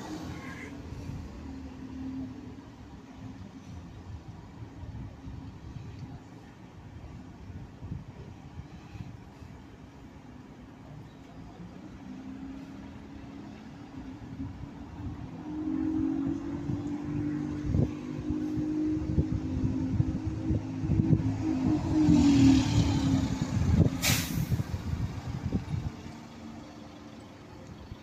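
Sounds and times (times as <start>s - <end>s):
bus engine driving past: 0.0s - 28.0s
brief hiss: 24.0s - 24.7s.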